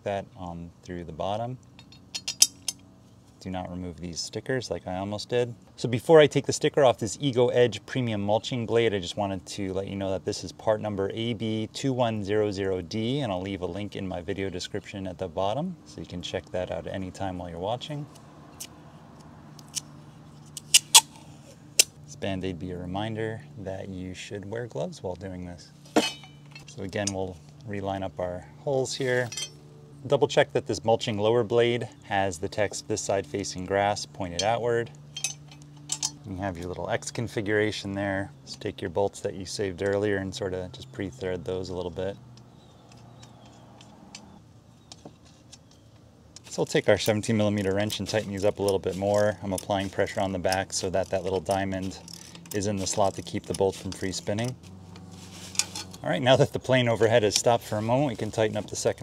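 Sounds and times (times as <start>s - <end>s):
sticker peeling off metal: 19.6s - 22.0s.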